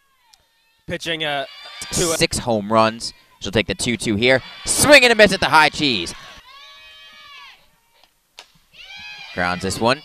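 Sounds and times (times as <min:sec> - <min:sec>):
person shouting: 0:01.8 - 0:02.2.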